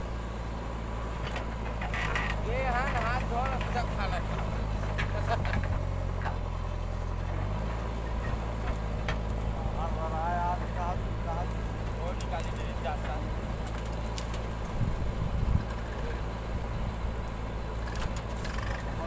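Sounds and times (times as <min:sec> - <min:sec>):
diesel engine under load: 0:00.0 - 0:19.0.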